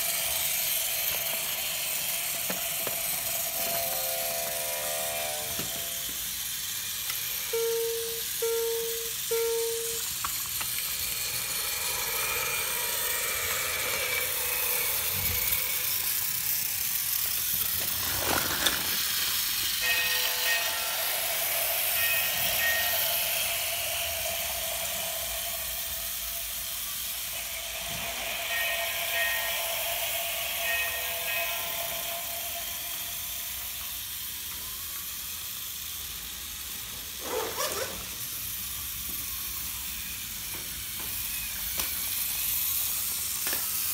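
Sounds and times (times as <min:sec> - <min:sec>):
whir of small toy motors: 0:00.0 - 0:43.9
electronic toy tones: 0:07.3 - 0:10.2.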